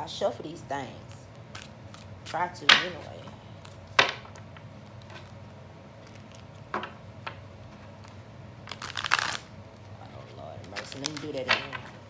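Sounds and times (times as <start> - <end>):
cards riffling: 1.4 - 2.4, 7.7 - 11.9.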